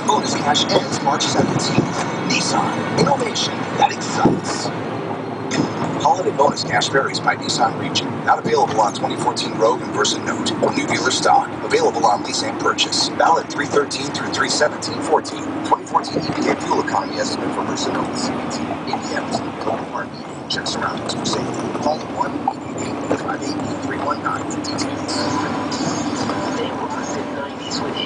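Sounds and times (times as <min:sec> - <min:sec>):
car road and engine drone: 0:00.0 - 0:28.0
indistinct talking: 0:00.0 - 0:28.0.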